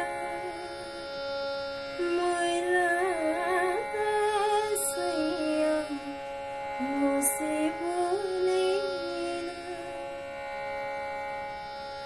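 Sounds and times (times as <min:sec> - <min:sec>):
woman singing: 0:00.0 - 0:01.0, 0:02.0 - 0:10.0
steady drone: 0:00.0 - 0:12.0.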